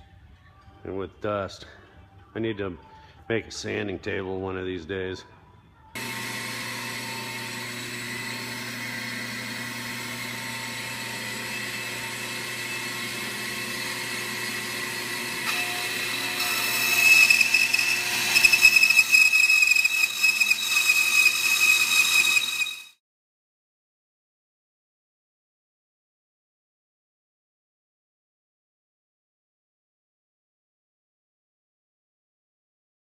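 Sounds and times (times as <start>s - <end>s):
bandsaw cutting wood: 6.0s - 23.0s
bandsaw motor hum: 6.0s - 23.0s.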